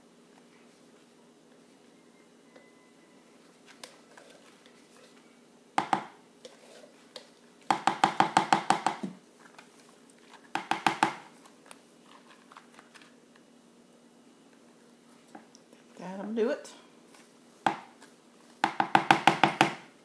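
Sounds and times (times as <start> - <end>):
spatula knocking on plastic bowl: 5.8 - 6.2, 7.7 - 9.1.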